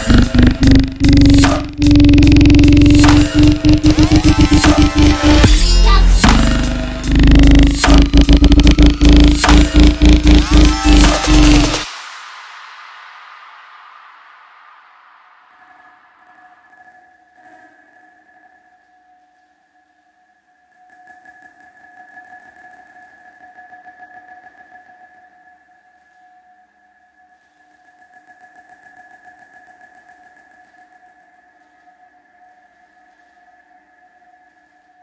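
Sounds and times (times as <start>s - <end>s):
faint pulsing texture: 0.0s - 11.8s
sustained synth drone: 0.0s - 11.9s.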